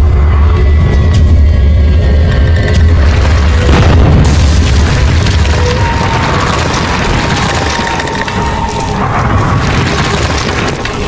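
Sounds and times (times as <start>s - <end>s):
deep rumbling boom: 0.7s - 11.0s
stone wall crashing and crumbling: 3.0s - 11.0s.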